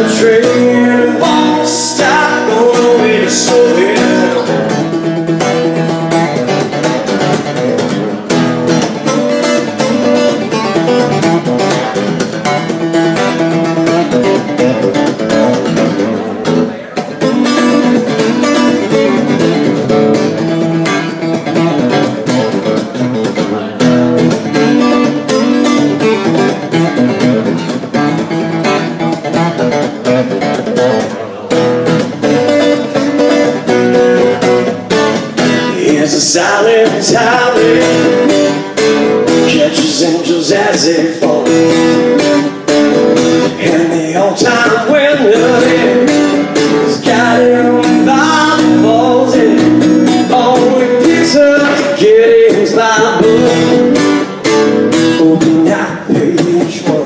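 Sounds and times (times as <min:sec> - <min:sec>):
acoustic guitar strummed and picked: 0:00.0 - 0:57.0.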